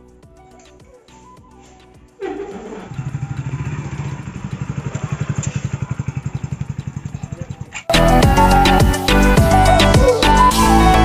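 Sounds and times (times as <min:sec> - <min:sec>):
motorcycle engine at low revs: 0:02.2 - 0:07.9.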